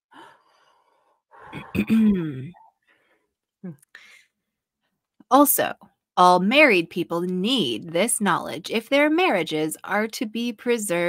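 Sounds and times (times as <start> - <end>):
person breathing in deeply: 0.1 - 1.8
person sighing: 1.4 - 2.7.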